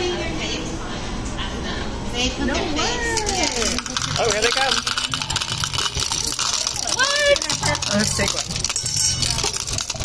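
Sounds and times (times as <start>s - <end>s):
candies rattling into plastic cup: 3.2s - 10.0s.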